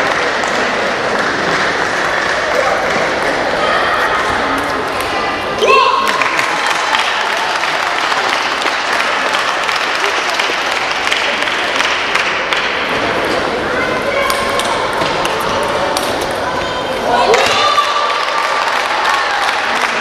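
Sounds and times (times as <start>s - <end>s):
murmur of crowd: 0.0s - 20.0s.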